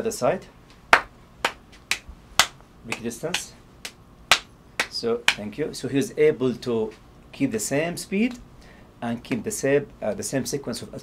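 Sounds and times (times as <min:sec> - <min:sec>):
hand slapping hand: 0:00.9 - 0:05.5.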